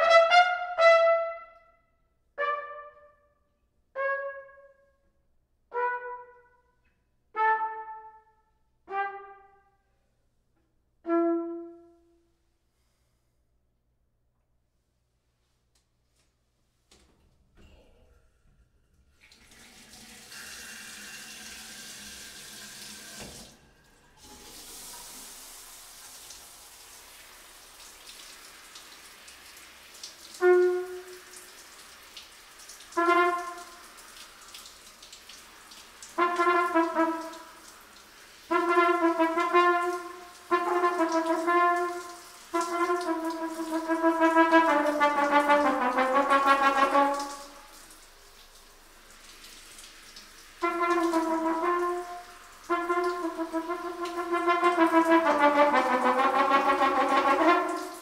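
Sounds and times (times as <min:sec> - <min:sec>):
trumpet playing: 0:00.0 - 0:01.8, 0:02.4 - 0:05.0, 0:05.7 - 0:06.7, 0:07.3 - 0:09.9, 0:11.0 - 0:12.3, 0:30.4 - 0:31.5, 0:32.8 - 0:34.1, 0:36.0 - 0:47.8, 0:50.6 - 0:58.0
water running into bathtub: 0:19.0 - 0:58.0.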